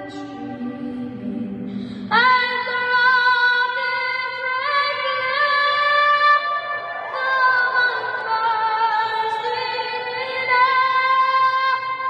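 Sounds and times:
woman singing anthem over pa: 0:00.0 - 0:12.0.

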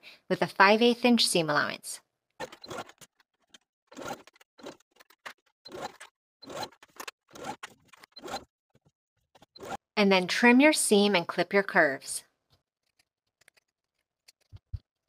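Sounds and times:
sewing machine stitching: 0:02.4 - 0:08.5, 0:09.4 - 0:09.9.

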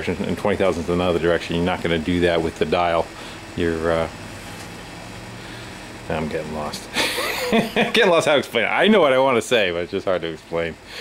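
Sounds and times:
low hum and hiss: 0:00.0 - 0:11.0.

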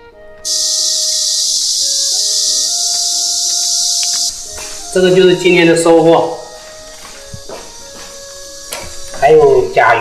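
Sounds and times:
quiet background music: 0:00.0 - 0:10.0
loud high-pitched hiss: 0:00.4 - 0:10.0.

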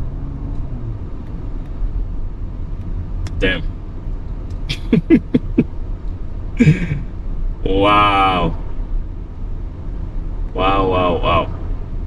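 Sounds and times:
car cabin road rumble: 0:00.0 - 0:12.0
man chuckling: 0:04.7 - 0:05.6, 0:06.6 - 0:07.1.

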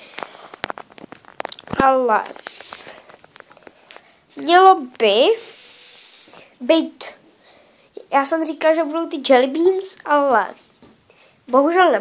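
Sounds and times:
phone handling clicks and rustles: 0:00.0 - 0:04.1
boy's voice: 0:01.6 - 0:02.8, 0:04.3 - 0:07.3, 0:08.0 - 0:10.6, 0:11.5 - 0:12.0.

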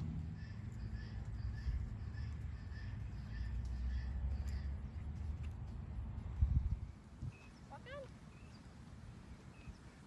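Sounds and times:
bird calling: 0:00.3 - 0:05.0
wind rumble on microphone: 0:05.0 - 0:08.1.

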